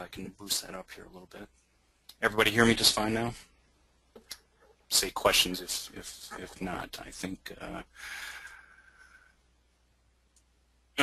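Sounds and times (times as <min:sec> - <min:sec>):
faint breath into microphone: 0:07.9 - 0:09.5.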